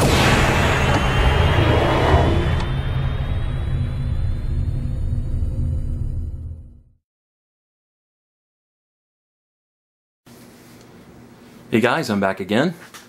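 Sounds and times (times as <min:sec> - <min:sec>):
low rumbling drone: 0:00.0 - 0:07.0
faint high rising tone: 0:00.8 - 0:07.0.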